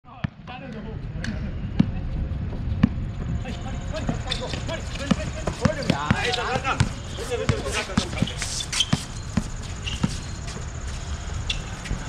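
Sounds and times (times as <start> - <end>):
players' voices: 0.1 - 12.0
basketball bouncing on hard court: 4.1 - 10.2.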